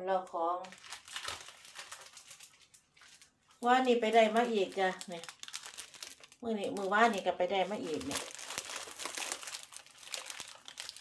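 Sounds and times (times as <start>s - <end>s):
cellophane wrappers crinkling: 0.6s - 11.0s.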